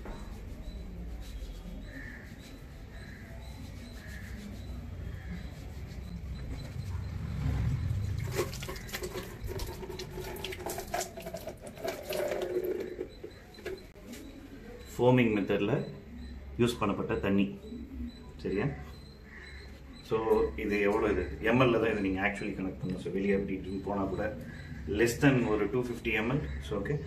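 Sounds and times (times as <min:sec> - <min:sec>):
water splashing: 0:07.3 - 0:13.3
tap water trickling onto hands: 0:08.2 - 0:13.3.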